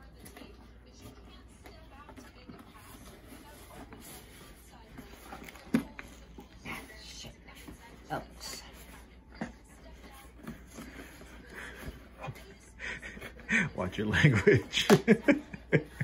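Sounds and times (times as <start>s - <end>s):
scratching and rustling cardboard: 0.0s - 12.5s.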